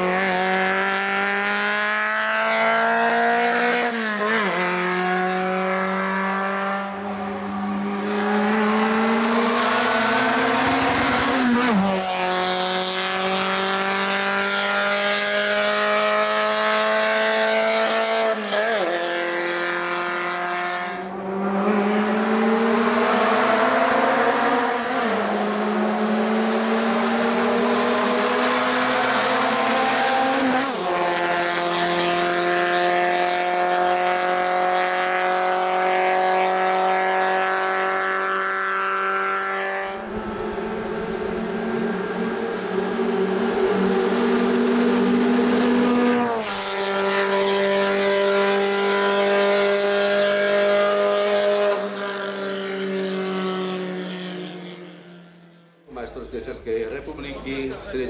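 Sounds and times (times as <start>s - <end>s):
car engine revving hard: 0.0s - 55.0s.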